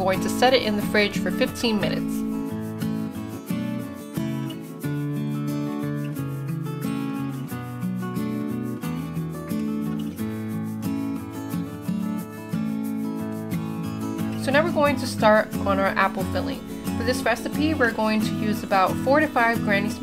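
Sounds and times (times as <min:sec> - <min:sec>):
acoustic guitar plucking: 0:00.0 - 0:20.0.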